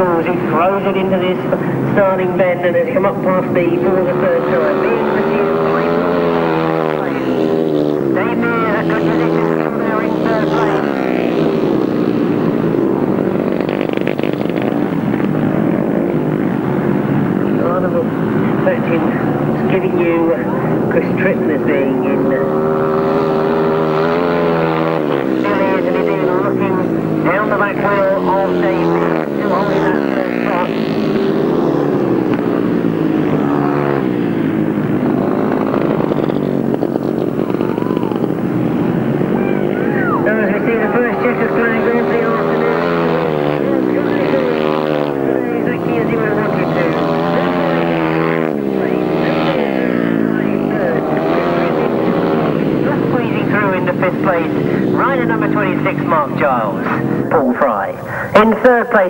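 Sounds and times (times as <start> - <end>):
racing motorcycle engines: 0.0 - 59.0.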